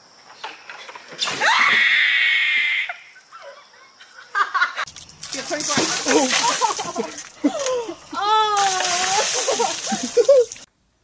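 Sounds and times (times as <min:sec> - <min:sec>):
ice water splashing from bucket: 0:05.2 - 0:10.7
girl screaming: 0:08.1 - 0:09.3.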